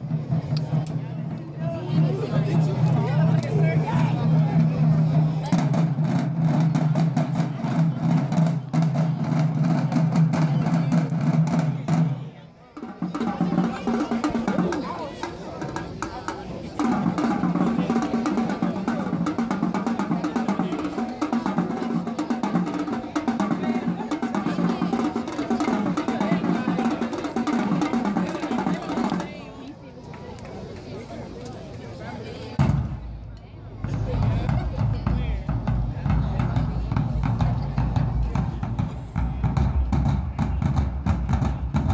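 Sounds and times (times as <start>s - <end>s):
crowd chatter: 0.0s - 41.9s
marching drumline playing: 1.8s - 29.5s, 33.8s - 41.9s.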